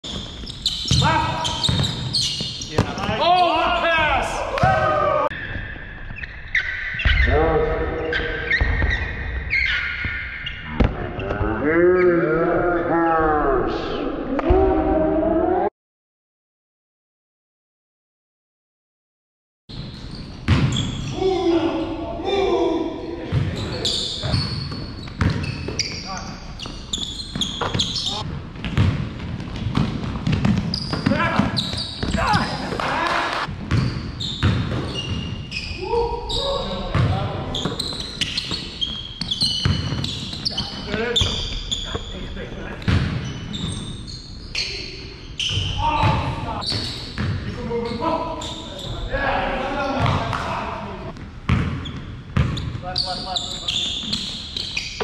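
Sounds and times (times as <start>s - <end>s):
sneakers squeaking: 0.0s - 11.6s, 19.7s - 55.0s
basketball bouncing on wooden floor: 1.6s - 3.1s, 20.5s - 20.8s, 24.2s - 25.9s, 28.6s - 32.4s, 51.2s - 52.8s
basketball bouncing on hardwood: 1.7s - 2.1s, 28.6s - 32.4s
players shouting: 2.8s - 5.3s, 31.0s - 33.5s
players calling out: 30.8s - 33.5s.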